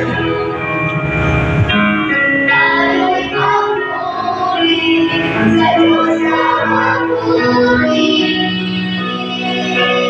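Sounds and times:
children's choir singing: 0:00.0 - 0:00.7, 0:02.0 - 0:10.0.

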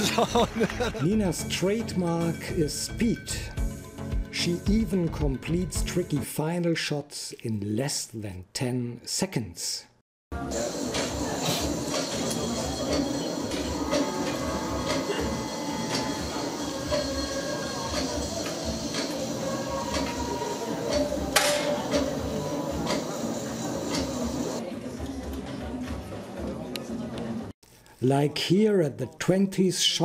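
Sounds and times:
murmur of voices: 0:10.4 - 0:27.5.

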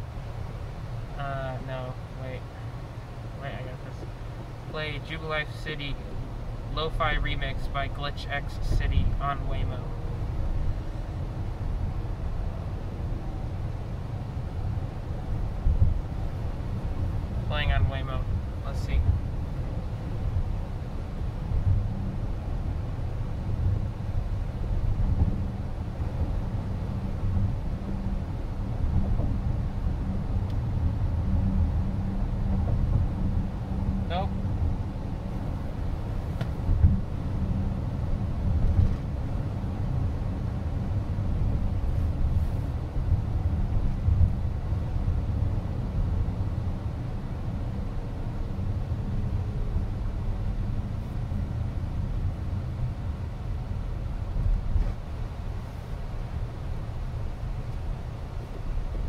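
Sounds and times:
road and tyre noise in car: 0:00.0 - 0:59.0.

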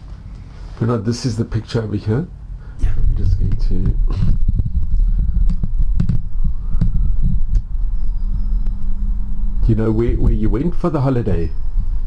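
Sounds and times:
dull thumps: 0:02.8 - 0:07.7
scattered clicks: 0:03.3 - 0:07.9.

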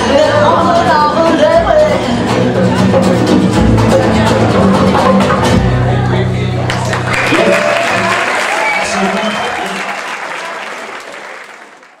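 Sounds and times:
audience applauding: 0:06.6 - 0:12.0
audience shouting: 0:06.7 - 0:12.0.

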